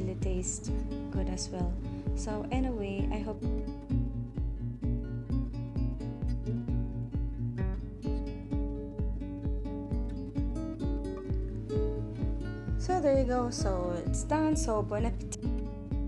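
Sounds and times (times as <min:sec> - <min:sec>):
low pulsing beat: 0:00.0 - 0:16.0
plucked guitar music: 0:00.0 - 0:16.0.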